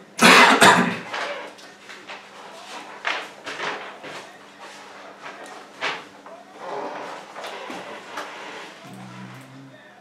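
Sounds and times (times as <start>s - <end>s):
person coughing: 0.2s - 1.1s.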